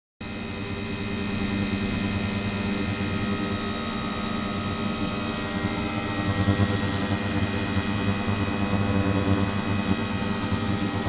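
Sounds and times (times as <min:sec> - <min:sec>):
thin high whine: 0:03.0 - 0:11.0.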